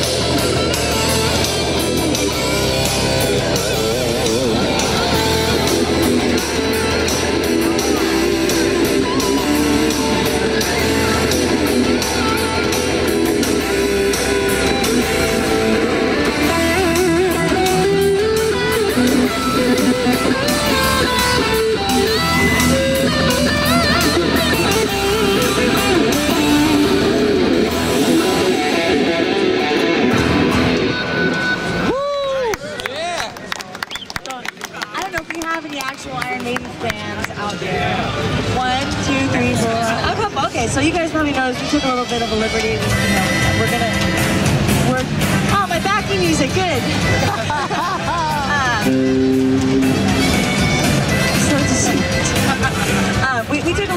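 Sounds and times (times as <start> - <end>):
dense musical accompaniment: 0.0 - 31.9, 42.0 - 53.9
electric guitars playing lead: 0.0 - 32.0, 37.0 - 53.9.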